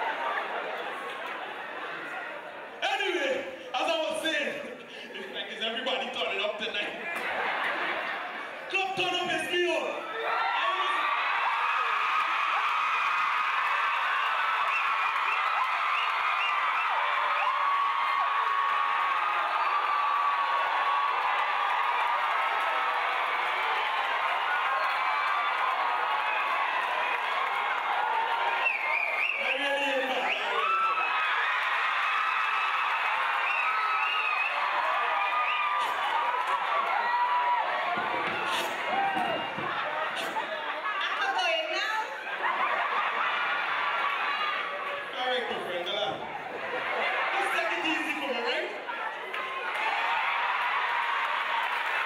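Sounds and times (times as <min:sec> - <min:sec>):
audience cheering and whooping: 0:00.0 - 0:03.1, 0:07.1 - 0:52.0.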